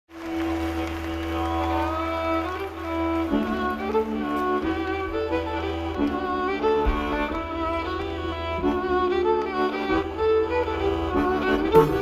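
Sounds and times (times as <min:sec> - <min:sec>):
folk band playing a tune: 0:00.1 - 0:12.0.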